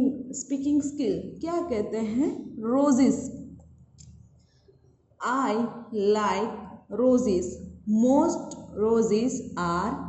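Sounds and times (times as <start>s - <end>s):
woman speaking: 0.0s - 3.5s, 5.2s - 10.0s.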